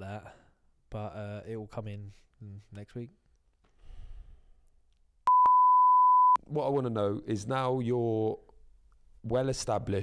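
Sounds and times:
person exhaling softly: 3.8s - 4.6s.

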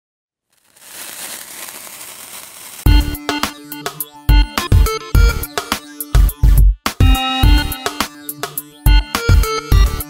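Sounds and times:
noisy hiss: 0.6s - 2.9s.

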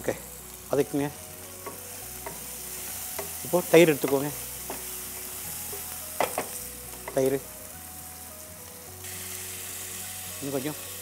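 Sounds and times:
vegetables sizzling in oil: 0.0s - 11.0s.

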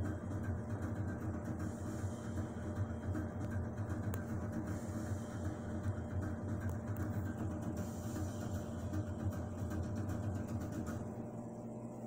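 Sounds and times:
aquarium equipment humming: 0.0s - 12.0s.

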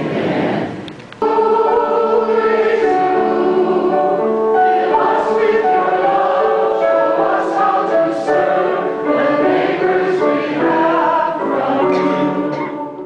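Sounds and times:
choir singing a hymn: 0.0s - 13.0s.

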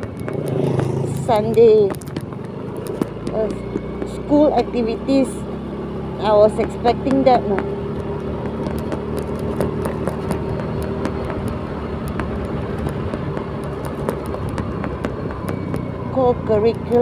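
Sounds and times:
road and wind noise: 0.0s - 17.0s
scooter engine running: 0.0s - 17.0s.

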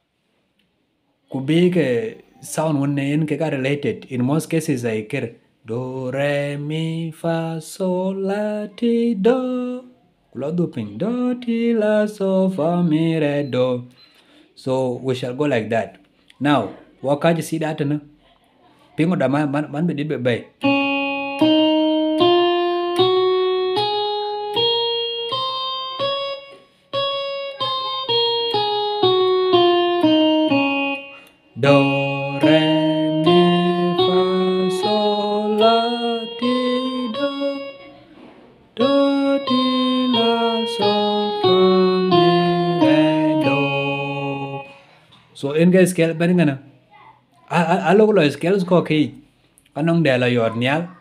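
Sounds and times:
digital keyboard playing a scale: 20.6s - 38.2s, 38.8s - 44.8s.

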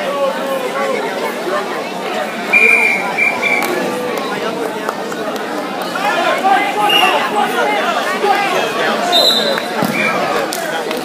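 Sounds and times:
spectators chatting: 0.0s - 11.0s.

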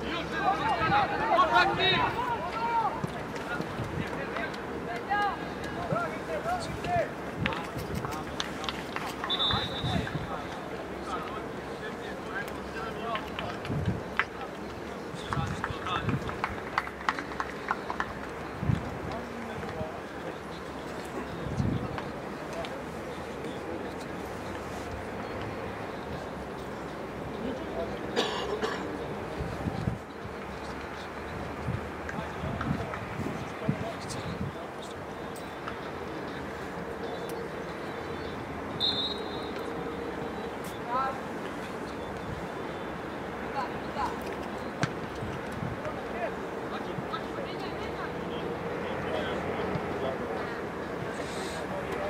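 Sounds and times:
players shouting: 0.0s - 7.2s
outdoor background noise: 0.0s - 52.0s
referee's whistle blast: 9.3s - 10.1s, 38.8s - 39.7s.

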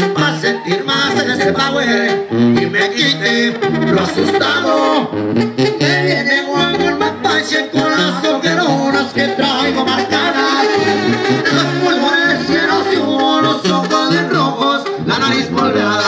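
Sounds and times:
live band music over a pa: 0.0s - 16.0s.

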